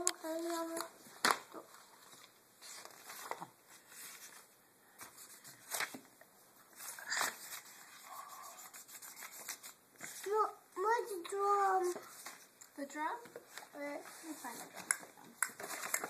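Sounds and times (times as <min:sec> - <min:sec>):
paper rustling and scraping: 0:01.6 - 0:06.0, 0:06.8 - 0:10.5, 0:13.4 - 0:15.0.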